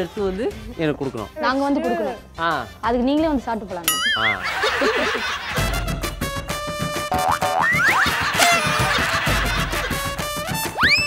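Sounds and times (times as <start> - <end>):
comic background music: 0.0 - 11.0
springy boing: 7.1 - 8.0.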